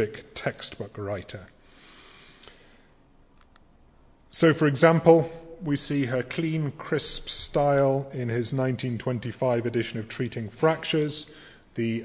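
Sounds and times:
faint sharp clicks: 3.4s - 3.8s.

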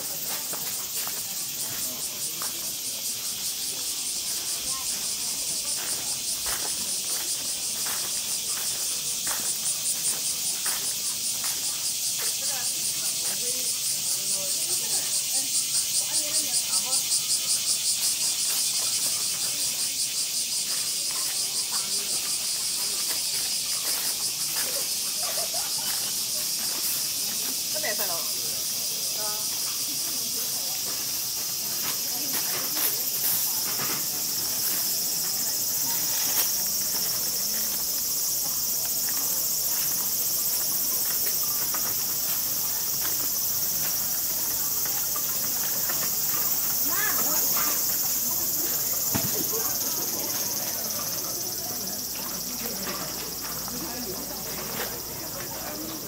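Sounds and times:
cicadas droning: 0.0s - 56.0s
faint voices of passers-by: 0.0s - 56.0s.

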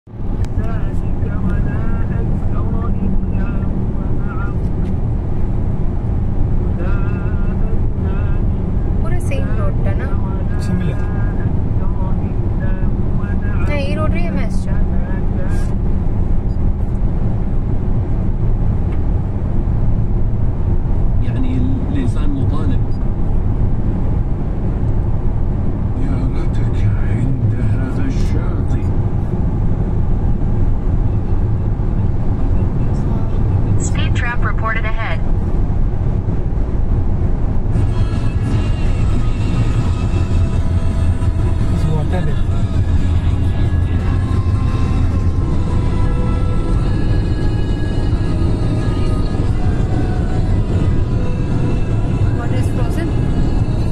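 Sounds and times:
car road and engine rumble: 0.0s - 53.9s
voices: 0.5s - 4.9s, 6.7s - 15.7s, 21.2s - 23.0s, 26.0s - 28.9s, 31.2s - 35.2s, 37.8s - 44.8s, 45.6s - 53.9s
music: 37.7s - 53.9s.

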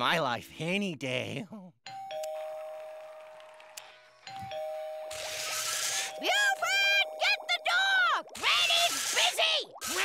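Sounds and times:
two-note doorbell chime: 1.9s - 3.1s, 4.3s - 5.1s.

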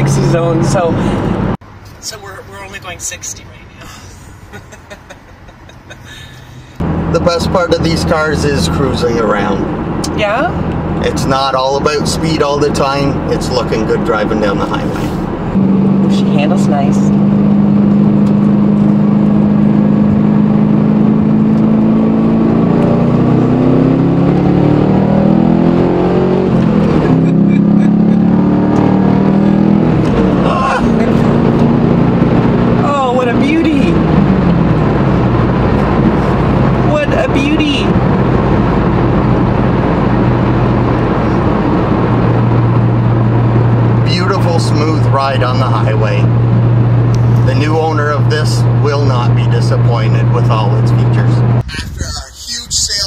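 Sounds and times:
car engine and exhaust drone: 0.0s - 53.0s
road noise: 0.0s - 53.0s.

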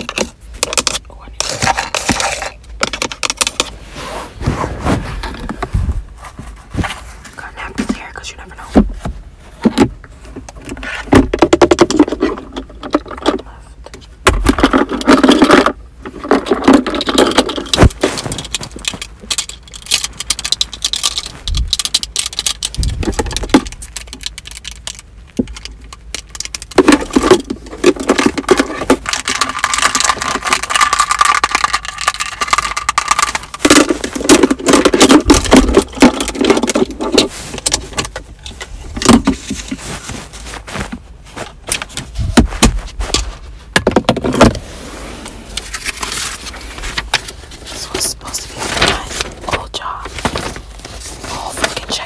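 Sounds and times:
small hard items rattling: 0.0s - 3.8s, 9.6s - 44.6s, 45.5s - 52.0s.

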